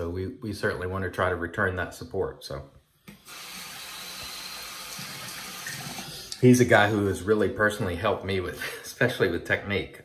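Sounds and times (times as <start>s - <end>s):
tap running into sink: 3.1s - 6.1s.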